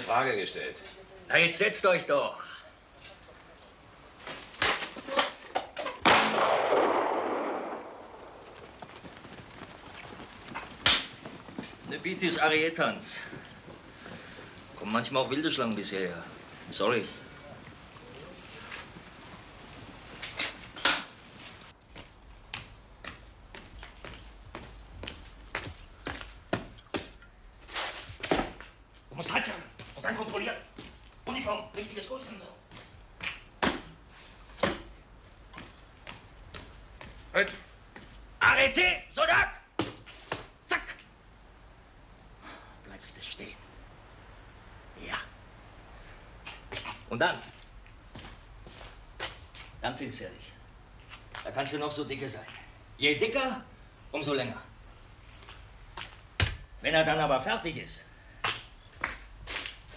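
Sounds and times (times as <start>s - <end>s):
crickets chirping: 0.0s - 59.9s
knocks and rustles of movement: 3.0s - 6.1s, 7.8s - 38.4s.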